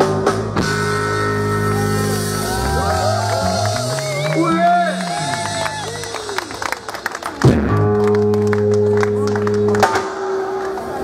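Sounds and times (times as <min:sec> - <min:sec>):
rock band playing: 0:00.0 - 0:11.0
scattered clapping: 0:03.2 - 0:10.8.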